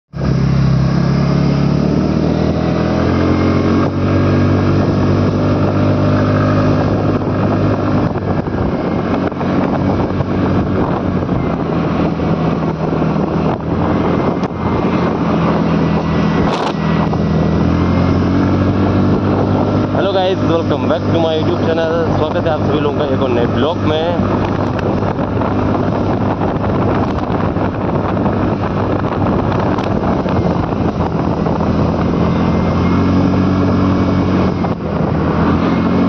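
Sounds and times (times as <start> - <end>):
scooter engine running: 0.1 - 36.0
wind on microphone: 0.2 - 36.0.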